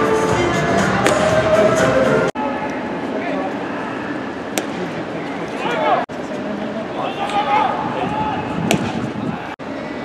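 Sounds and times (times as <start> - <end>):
baseball smacking into mitt: 1.0 - 1.3, 4.6 - 4.8, 8.6 - 9.0.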